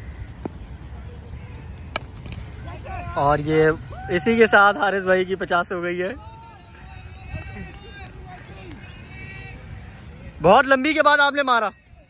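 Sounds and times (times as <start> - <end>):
distant men calling out: 2.5 - 12.0.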